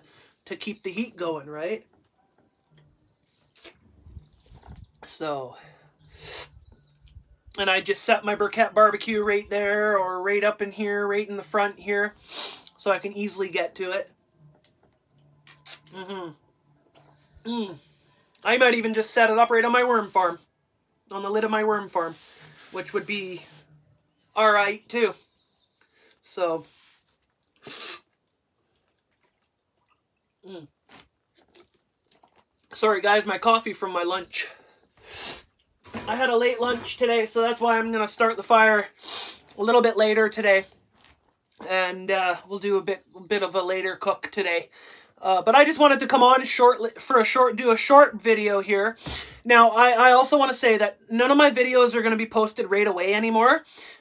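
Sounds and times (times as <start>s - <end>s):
man sharp breath: 5.6s - 6.6s, 12.2s - 12.7s, 34.8s - 35.5s
man sipping coffee: 26.8s - 32.7s.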